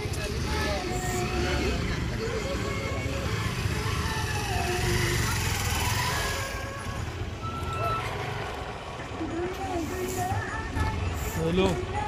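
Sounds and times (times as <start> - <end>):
indistinct chatter outdoors: 0.0 - 12.0.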